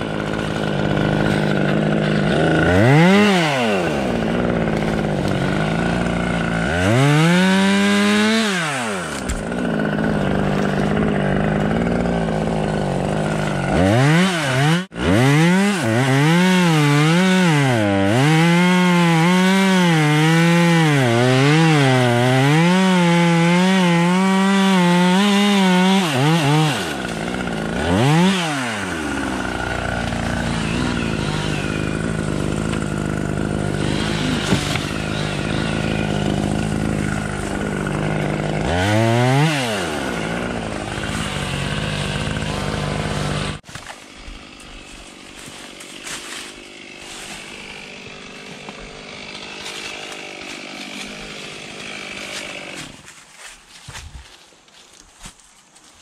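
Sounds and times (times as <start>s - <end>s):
chainsaw revving and cutting: 0.0s - 54.0s.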